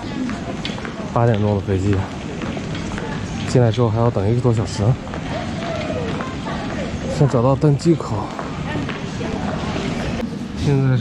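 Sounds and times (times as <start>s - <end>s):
airport terminal background noise: 0.0s - 11.0s
faint distant voices: 0.0s - 11.0s.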